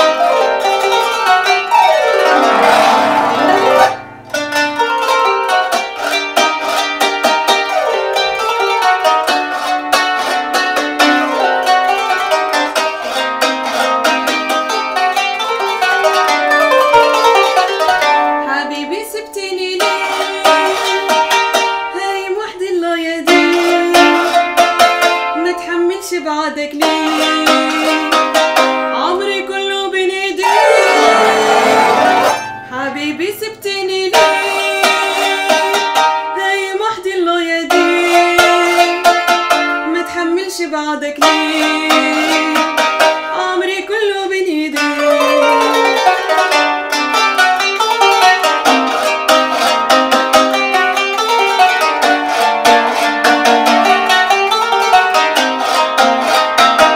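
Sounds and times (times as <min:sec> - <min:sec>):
plucked zither notes: 0:00.0 - 0:22.5, 0:23.2 - 0:26.2, 0:26.8 - 0:40.6, 0:41.2 - 0:56.9.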